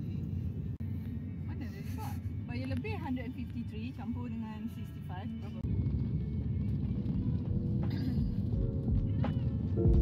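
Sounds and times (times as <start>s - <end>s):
road rumble inside car: 0.0s - 10.0s
soft background music: 0.0s - 10.0s.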